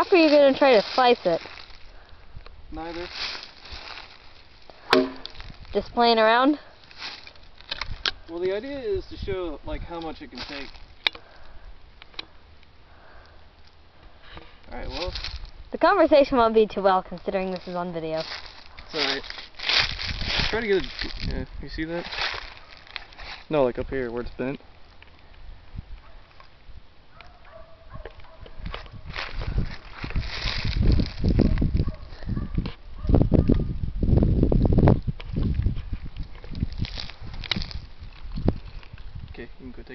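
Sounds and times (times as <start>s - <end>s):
clothing and leaves rustling: 0.0s - 33.1s, 33.7s - 39.9s.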